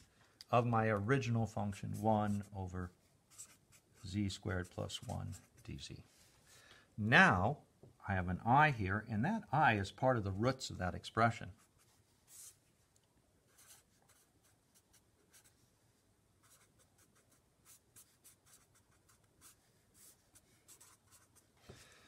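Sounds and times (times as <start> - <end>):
marker scratching on paper: 1.6 - 2.6, 3.3 - 5.7, 11.6 - 12.6, 13.5 - 15.6, 16.4 - 21.5.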